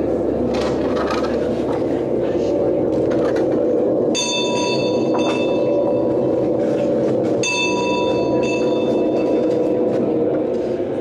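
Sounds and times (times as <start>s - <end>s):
steady low drone: 0.0s - 11.0s
metallic bell strikes: 4.1s - 6.1s, 7.4s - 9.4s.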